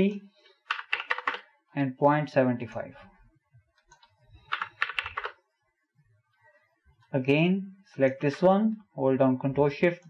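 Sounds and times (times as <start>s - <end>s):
computer keyboard typing: 0.7s - 1.4s, 3.9s - 5.4s.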